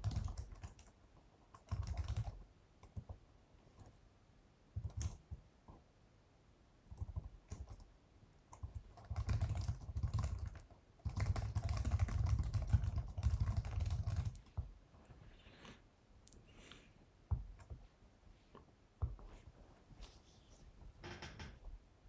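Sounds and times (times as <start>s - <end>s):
typing on computer keyboard: 0.0s - 3.2s, 4.8s - 5.4s, 6.9s - 7.9s, 8.5s - 14.7s.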